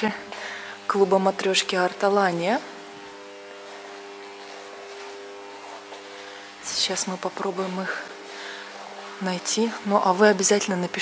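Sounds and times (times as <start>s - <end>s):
buzzy electrical hum: 0.0s - 11.0s.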